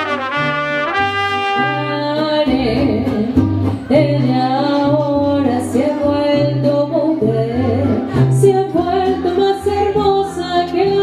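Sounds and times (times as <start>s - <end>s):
bass line: 0.0s - 4.2s
mariachi band singing: 0.0s - 11.0s
strummed guitars: 0.0s - 11.0s.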